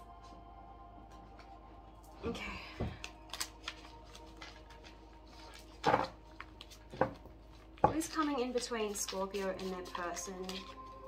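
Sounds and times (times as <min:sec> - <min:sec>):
deck of cards rustling and knocking: 0:05.4 - 0:08.3.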